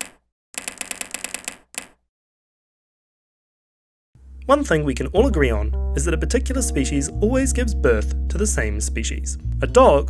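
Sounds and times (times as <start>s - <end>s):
typewriter keystrokes: 0.0s - 2.0s.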